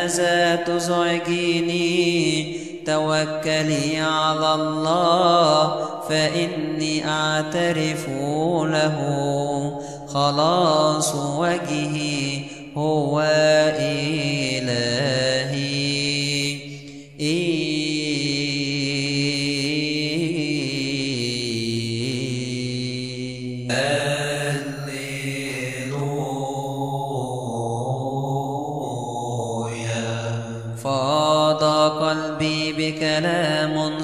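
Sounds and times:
slow chant-like melody: 0.0s - 34.0s.

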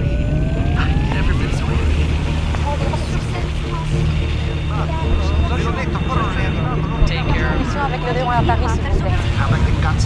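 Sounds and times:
garbled overlapping voices: 0.0s - 10.0s
steady low drone: 0.0s - 10.0s.

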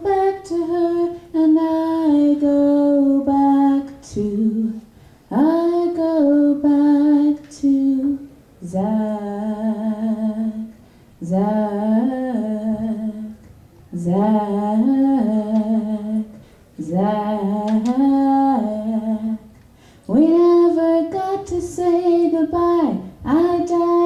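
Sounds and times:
woman singing unaccompanied: 0.0s - 24.0s.

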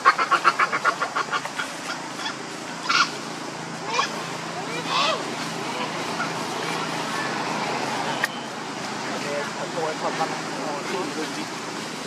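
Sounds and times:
macaques calling: 0.0s - 8.5s.

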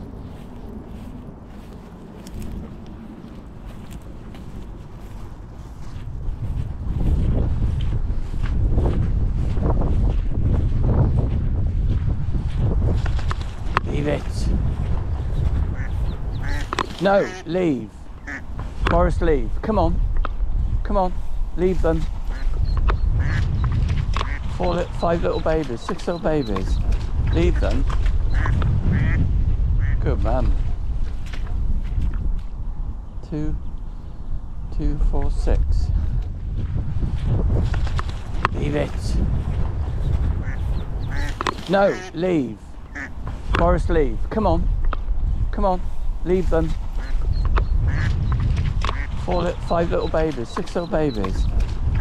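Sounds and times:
wind noise on microphone: 0.0s - 52.0s
duck quacking: 15.6s - 17.6s, 18.2s - 18.5s, 22.3s - 22.6s, 23.2s - 23.4s, 24.2s - 25.4s, 27.4s - 29.2s, 40.4s - 42.2s, 42.9s - 43.2s, 47.0s - 48.2s, 48.9s - 51.3s.

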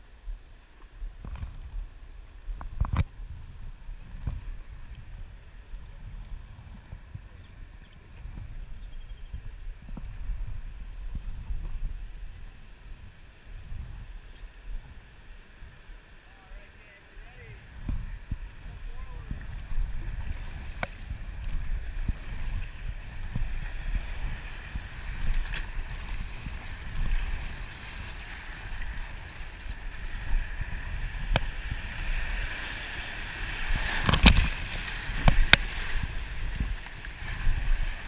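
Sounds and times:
wind rumble on microphone: 0.0s - 38.0s.

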